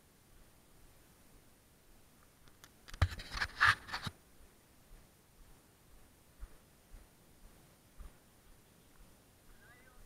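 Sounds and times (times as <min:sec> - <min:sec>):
sharp knocks and scraping rustles: 0:02.5 - 0:04.2.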